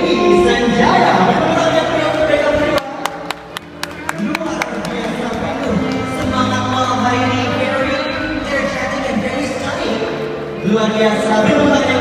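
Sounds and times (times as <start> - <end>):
hand claps: 2.8 - 6.2.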